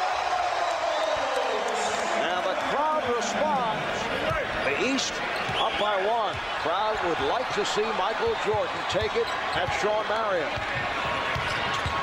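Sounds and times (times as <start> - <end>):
crowd din: 0.0 - 12.0
sneakers squeaking on court: 8.6 - 12.0.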